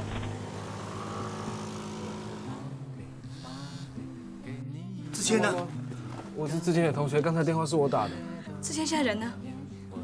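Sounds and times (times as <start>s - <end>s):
motor scooter engine running: 0.0s - 2.8s
road and wind noise: 0.0s - 3.2s.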